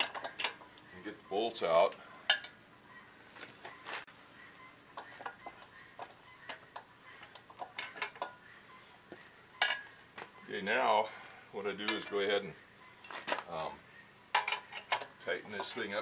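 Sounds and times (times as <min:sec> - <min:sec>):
metallic clicks of bolts and nuts: 0:14.3 - 0:15.8.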